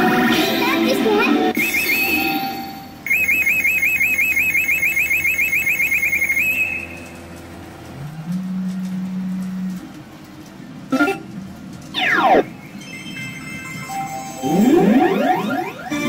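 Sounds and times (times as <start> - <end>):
steady low electronic tone: 10.9 - 16.0
rapid electronic warble: 11.9 - 16.0.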